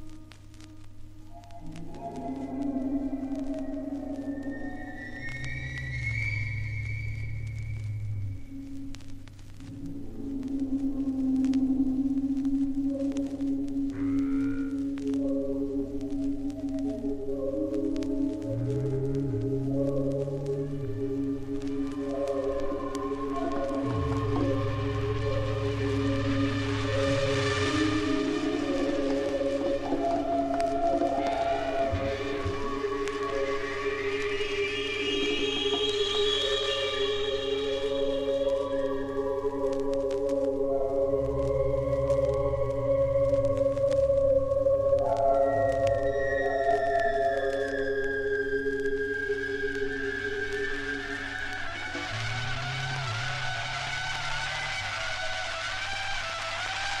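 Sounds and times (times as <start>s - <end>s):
record surface clicks: 0.0s - 27.9s, 37.8s - 48.1s
instrumental music on vinyl: 0.0s - 57.0s.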